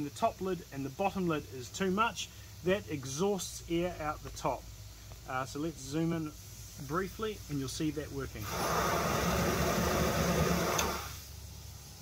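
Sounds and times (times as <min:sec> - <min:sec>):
air rushing out of valve: 0:04.7 - 0:12.0.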